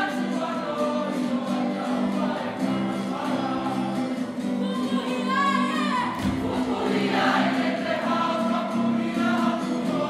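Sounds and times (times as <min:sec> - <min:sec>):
group singing in unison: 0:00.0 - 0:10.0.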